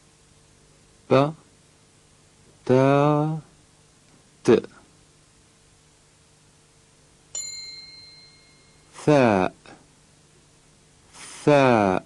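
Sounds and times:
bell-like chime ringing: 7.4s - 9.0s.

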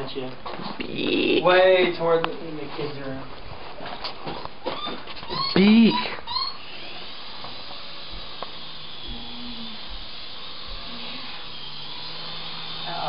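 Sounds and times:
toy helicopter rotors whirring: 5.4s - 13.0s.

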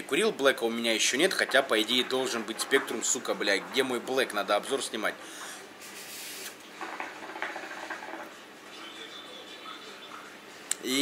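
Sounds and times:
hookah water bubbling: 1.2s - 5.4s, 6.7s - 8.4s.

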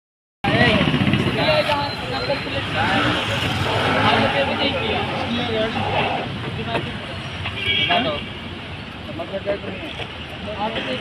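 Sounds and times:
motorbikes and scooters running: 0.5s - 7.0s
people talking: 0.5s - 8.3s.

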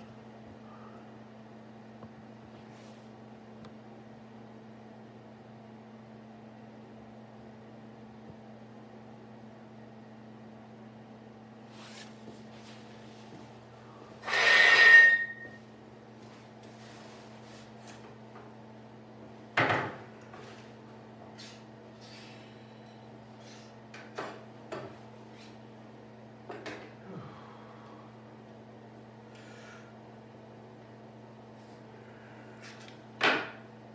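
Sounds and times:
metallic scrape with ringing tone: 14.2s - 15.6s.

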